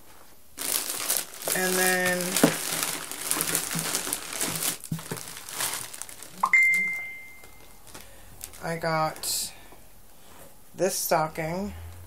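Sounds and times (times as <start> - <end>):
plastic packaging crinkling: 0.6 - 8.8
high-pitched tone: 6.4 - 7.7.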